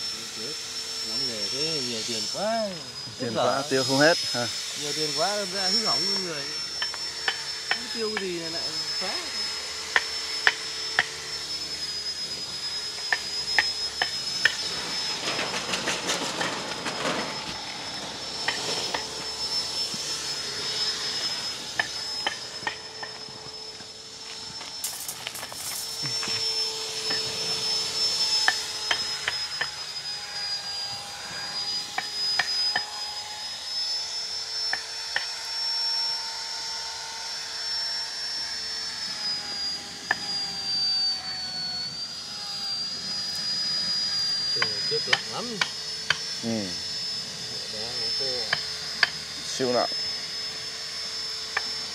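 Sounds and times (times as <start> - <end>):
steady high whine: 0.0 - 51.9.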